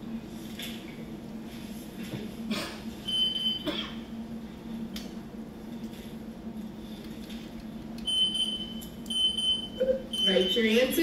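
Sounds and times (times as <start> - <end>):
electronic timer beeping: 3.1 - 3.6, 8.1 - 10.6.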